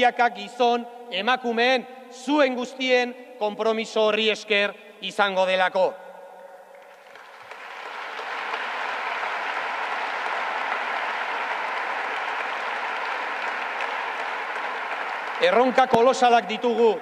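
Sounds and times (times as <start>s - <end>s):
audience applauding: 6.7s - 17.0s.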